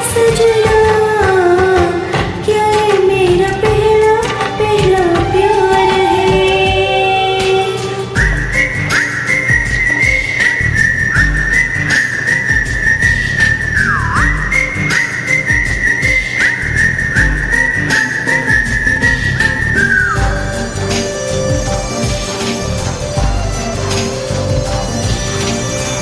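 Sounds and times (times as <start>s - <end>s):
steady beat: 0.0s - 26.0s
high whistle-like melody: 4.9s - 26.0s.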